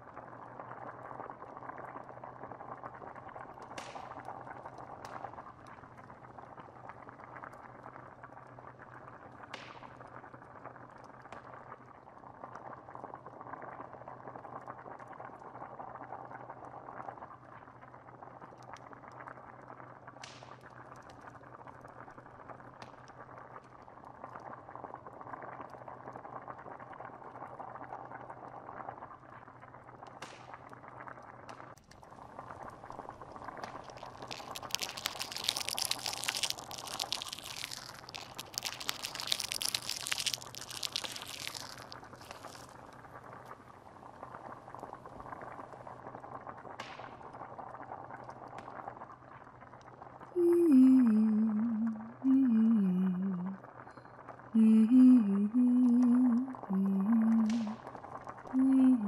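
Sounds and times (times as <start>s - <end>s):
wood fire crackling: 0.0s - 15.6s, 31.5s - 50.3s
stew bubbling in a pot: 0.0s - 59.0s.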